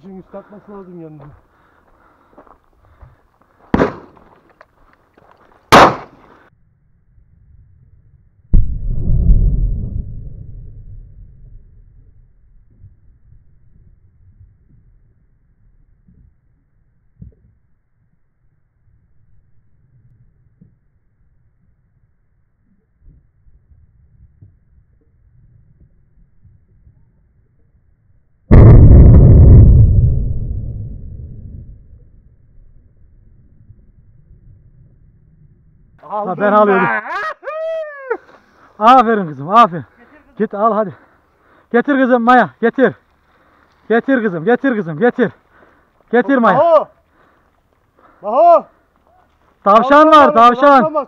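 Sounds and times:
shotgun shot: 3.7 - 4.2, 5.7 - 6.2, 28.5 - 30.1
shotgun shots: 3.7 - 4.2, 5.7 - 6.2.

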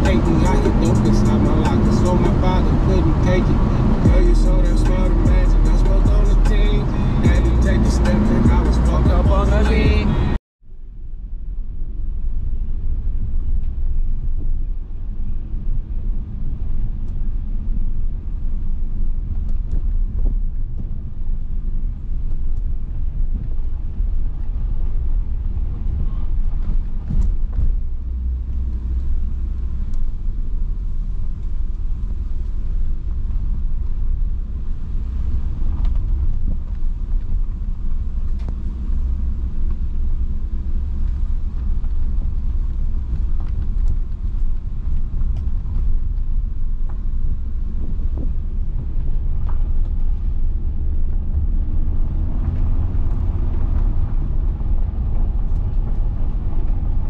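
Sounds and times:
car engine: 0.0 - 10.4, 11.6 - 57.0
tyres rumbling on dirt road: 0.0 - 10.4, 14.9 - 57.0.

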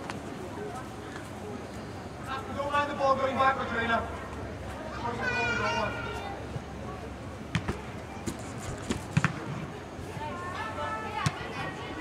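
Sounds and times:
soccer ball thumps: 7.5 - 9.5.

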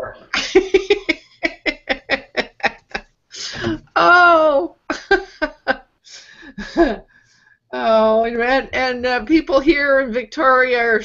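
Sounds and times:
person laughing: 0.4 - 3.9.

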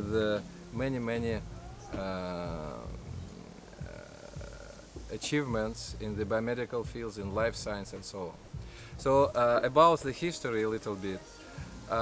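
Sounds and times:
faint steady hum: 0.0 - 12.0
low outdoor rumble: 0.0 - 12.0.

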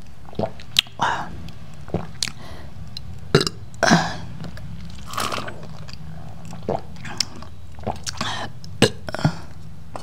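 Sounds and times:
person burping: 3.4 - 4.3, 7.9 - 9.5.

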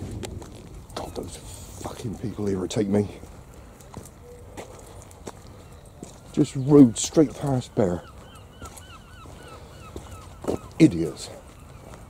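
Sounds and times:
footsteps on pavement: 0.0 - 12.0.

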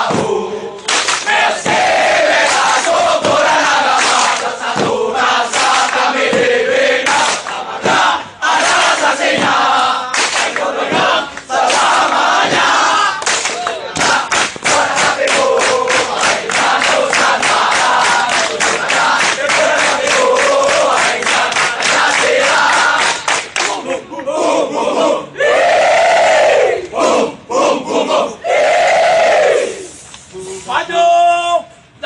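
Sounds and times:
slaps on thighs and chests: 0.0 - 6.5, 9.0 - 23.8.

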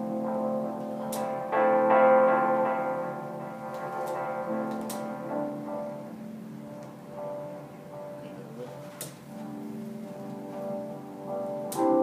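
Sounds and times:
keyboard-like chords through speakers: 0.0 - 12.0.

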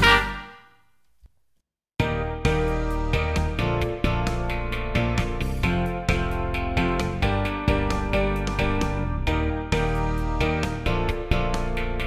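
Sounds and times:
instrumental pop backing track: 2.0 - 12.0.

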